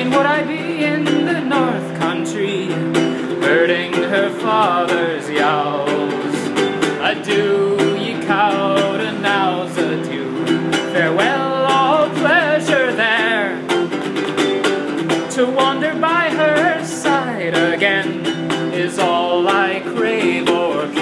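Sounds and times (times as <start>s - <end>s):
man singing folk ballad: 0.0s - 14.0s, 15.0s - 21.0s
acoustic guitar strumming: 0.0s - 21.0s.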